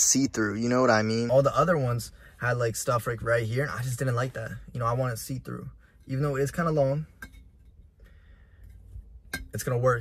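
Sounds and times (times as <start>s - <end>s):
low steady hum: 0.0s - 10.0s
glass jar clink: 9.3s - 9.6s.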